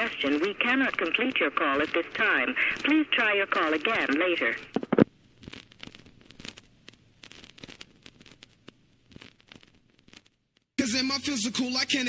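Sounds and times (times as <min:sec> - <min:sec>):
faint crackling and popping: 0:00.0 - 0:10.8.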